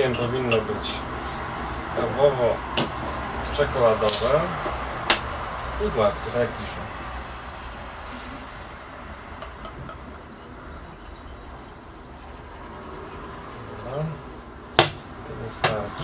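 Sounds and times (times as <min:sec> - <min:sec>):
beer pouring into a glass: 0:08.5 - 0:14.5
glass clinking against glass: 0:09.4 - 0:12.4.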